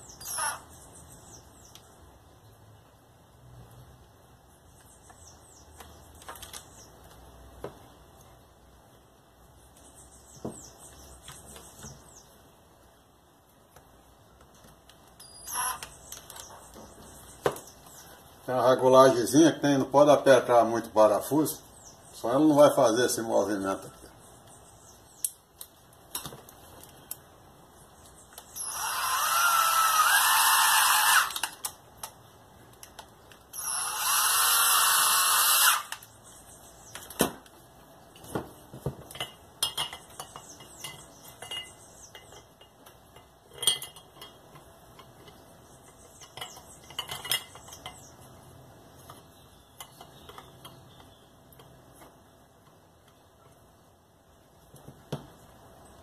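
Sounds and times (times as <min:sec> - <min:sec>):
power tool motor whining: 0:00.2 - 0:00.6, 0:28.6 - 0:31.6, 0:33.6 - 0:36.1
parts clicking and knocking: 0:36.9 - 0:48.4, 0:49.0 - 0:53.7.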